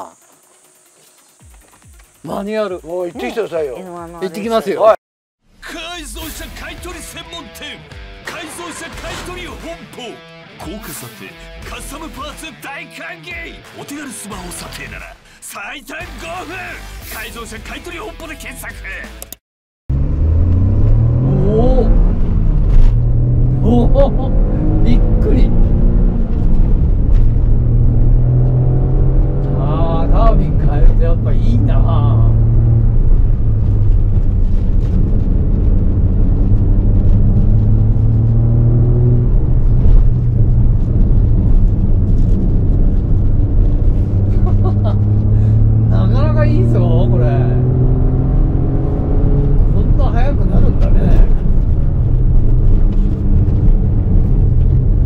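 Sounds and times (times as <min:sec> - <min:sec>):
car engine revving through gears: 0:19.9 - 0:55.0.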